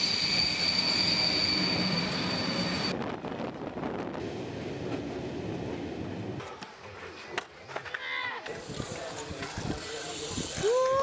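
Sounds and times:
train wheels squealing: 0:00.0 - 0:02.9
train rolling rumble: 0:00.0 - 0:07.1.

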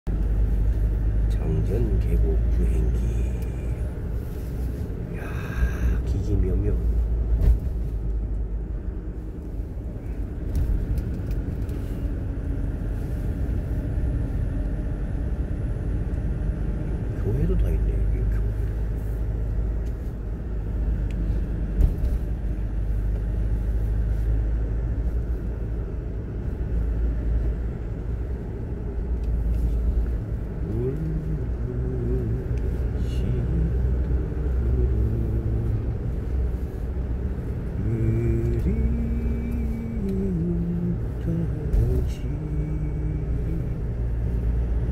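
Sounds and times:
car engine and tyres rumbling: 0:00.0 - 0:44.9
man humming: 0:05.1 - 0:06.0, 0:30.6 - 0:35.9, 0:37.8 - 0:44.0.

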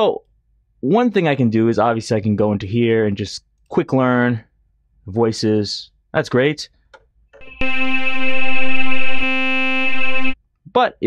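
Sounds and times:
buzzy synthesizer note: 0:07.4 - 0:10.4.

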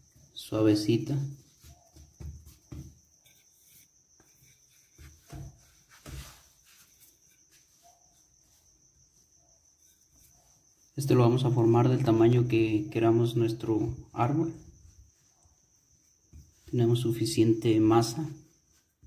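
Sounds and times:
soft knocks of dough pressing: 0:01.4 - 0:07.5, 0:16.1 - 0:17.0
rolling pin rubbing: 0:01.4 - 0:10.8.

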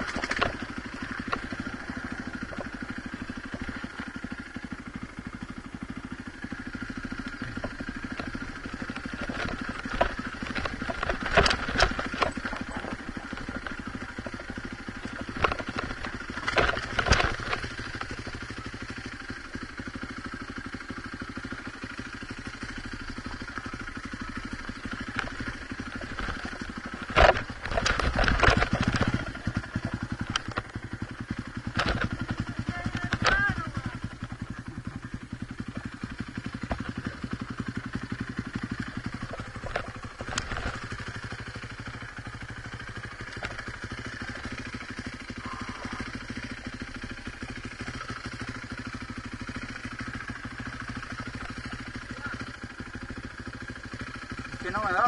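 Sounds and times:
dirt bike engine at low revs: 0:00.0 - 0:55.0
bike knocking over rocks: 0:07.4 - 0:18.2, 0:24.4 - 0:34.0.

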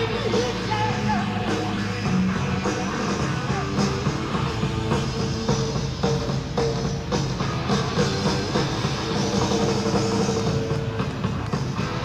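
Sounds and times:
live hard rock band: 0:00.0 - 0:12.0.

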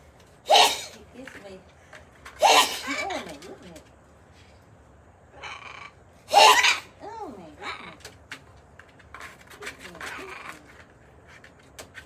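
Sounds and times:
parrot harsh screeches: 0:00.5 - 0:01.0, 0:02.4 - 0:03.0, 0:05.4 - 0:07.0
parrots calling: 0:00.5 - 0:01.0, 0:02.4 - 0:03.2, 0:05.3 - 0:08.0.

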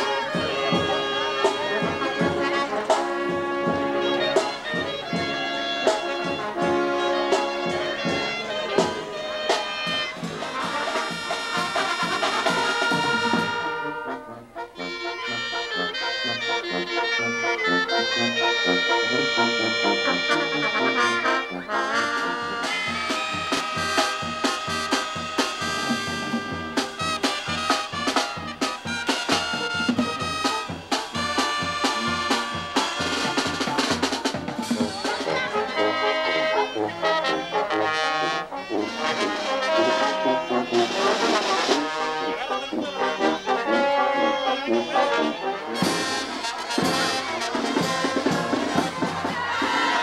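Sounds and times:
brass band playing: 0:00.0 - 0:50.0
bass drum beat: 0:22.4 - 0:35.5.

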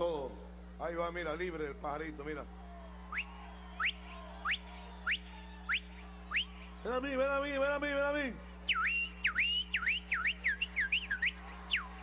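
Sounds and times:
steady low hum: 0:00.0 - 0:12.0
man whistling bird-like calls: 0:03.1 - 0:06.9, 0:08.6 - 0:12.0.

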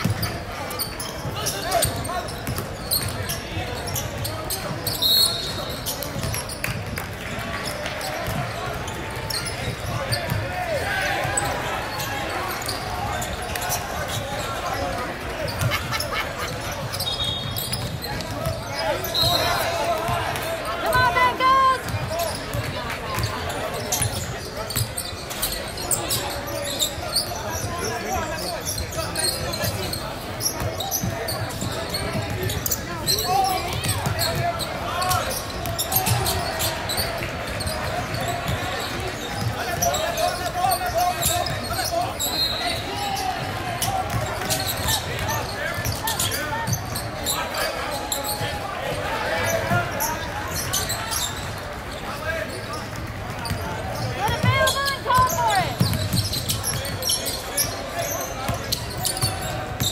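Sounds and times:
players and spectators chattering: 0:00.0 - 0:59.9
sneaker squeaks: 0:00.0 - 0:59.9.

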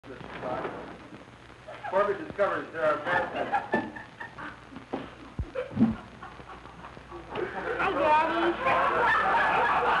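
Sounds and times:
people laughing: 0:02.9 - 0:10.0.

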